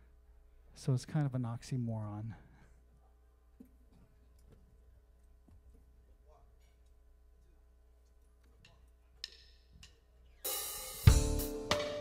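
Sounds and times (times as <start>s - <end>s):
jazz tune: 10.5s - 12.0s.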